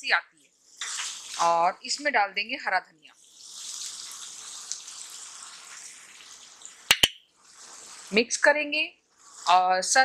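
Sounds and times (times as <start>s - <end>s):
vegetables sizzling in a pan: 0.6s - 1.6s, 3.2s - 8.2s
sharp click: 6.9s - 7.2s.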